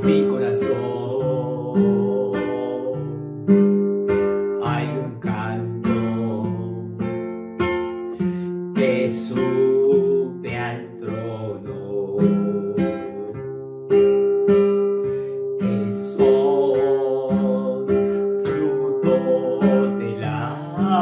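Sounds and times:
man singing: 0.0s - 3.6s, 4.5s - 7.3s, 8.2s - 13.6s, 15.6s - 21.0s
strummed acoustic guitar: 0.0s - 21.0s.

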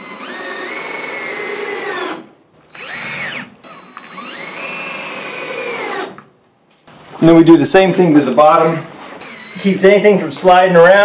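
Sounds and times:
cordless drill motor whine: 0.0s - 6.2s, 9.2s - 9.8s.

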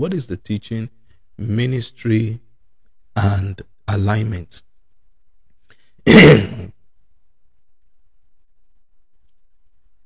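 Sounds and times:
man clearing his throat: 6.1s - 6.8s.

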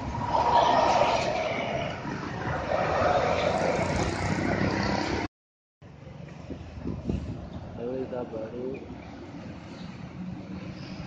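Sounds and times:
truck and bus passing: 0.0s - 11.0s.

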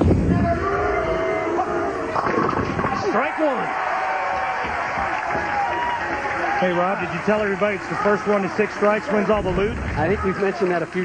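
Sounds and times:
crowd voices: 0.0s - 11.0s
bowling ball rolling: 2.1s - 3.1s.

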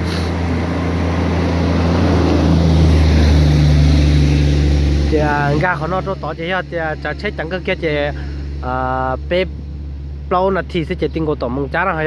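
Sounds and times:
low engine hum: 0.0s - 12.0s
truck passing by: 0.0s - 12.0s.

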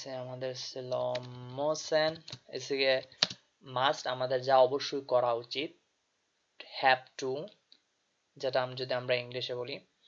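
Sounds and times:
computer keyboard typing: 2.0s - 2.5s, 3.2s - 3.4s.

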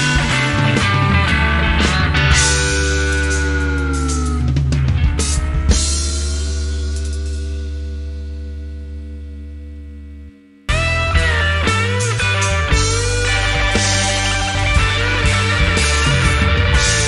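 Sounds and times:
rock band playing: 0.0s - 9.7s, 10.7s - 17.0s
guitar chord ringing: 0.0s - 17.0s.

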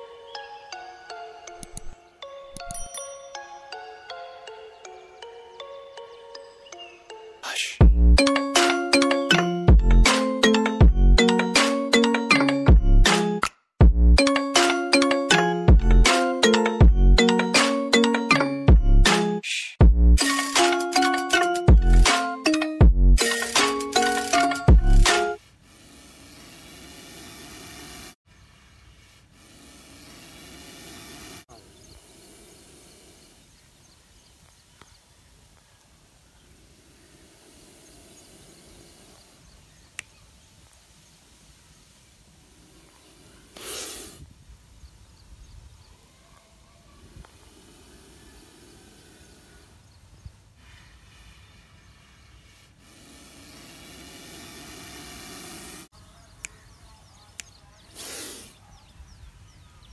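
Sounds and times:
cobra hissing: 7.4s - 7.8s, 23.2s - 33.9s, 36.1s - 40.2s, 41.7s - 44.4s, 47.0s - 56.7s, 57.3s - 58.8s.

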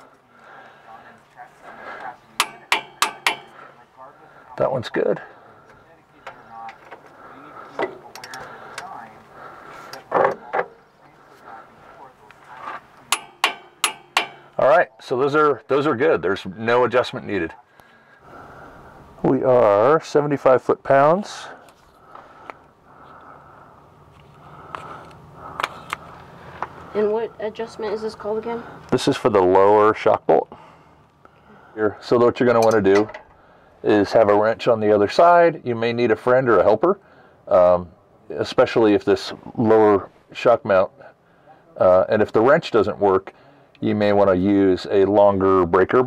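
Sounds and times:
torque wrench clicks and knocks: 2.4s - 3.5s, 13.1s - 14.6s.

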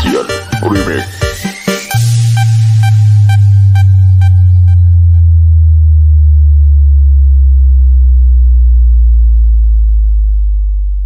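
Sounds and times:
sub-bass synth note sliding down: 1.9s - 11.0s.

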